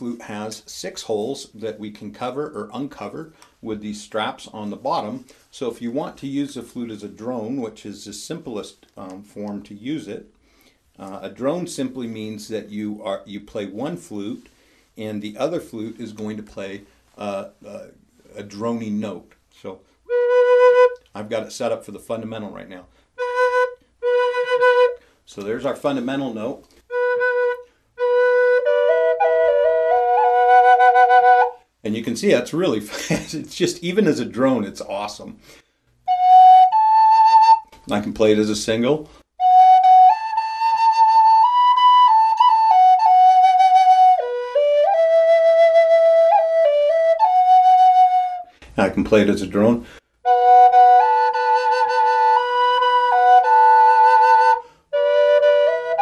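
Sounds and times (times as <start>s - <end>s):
flute note: 20.1s - 21.0s, 26.9s - 31.6s, 36.1s - 37.8s, 39.4s - 48.6s, 50.2s - 56.0s.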